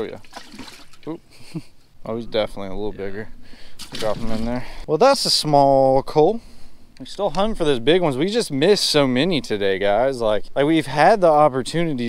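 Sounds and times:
people talking: 0:00.0 - 0:00.2, 0:02.0 - 0:03.3, 0:03.9 - 0:06.4, 0:07.0 - 0:12.0
water trickling and splashing: 0:00.0 - 0:01.1, 0:03.8 - 0:04.7.

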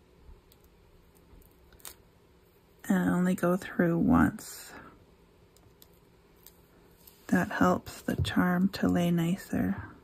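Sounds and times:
small clicks and rustles: 0:00.4 - 0:02.1, 0:05.5 - 0:07.3.

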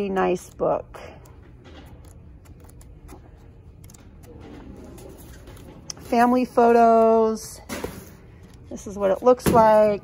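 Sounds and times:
book pages turning: 0:01.3 - 0:07.4.

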